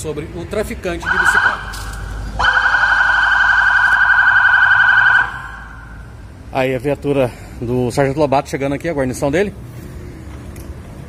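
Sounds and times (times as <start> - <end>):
police siren warbling: 1.0 - 6.2.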